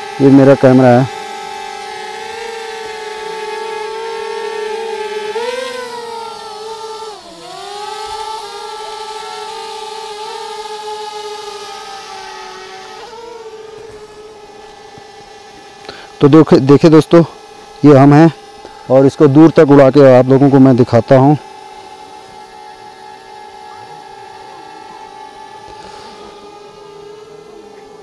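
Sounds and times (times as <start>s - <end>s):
drone propellers whining hum: 0.0s - 28.0s.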